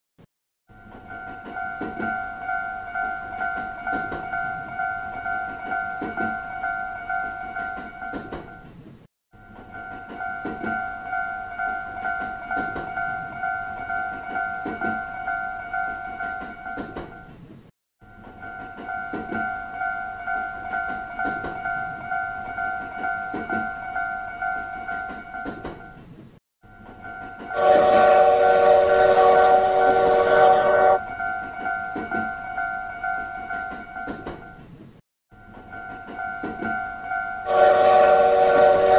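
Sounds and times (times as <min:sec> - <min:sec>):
railroad crossing bell ringing: 0:00.7 - 0:08.6, 0:09.4 - 0:17.3, 0:18.0 - 0:26.0, 0:26.7 - 0:34.7, 0:35.4 - 0:38.9
train horn: 0:27.5 - 0:31.0, 0:37.4 - 0:38.9.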